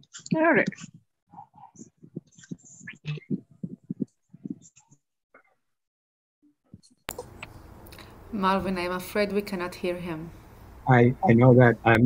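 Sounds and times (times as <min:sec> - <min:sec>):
steady hiss of room noise: 0:07.1 - 0:12.0.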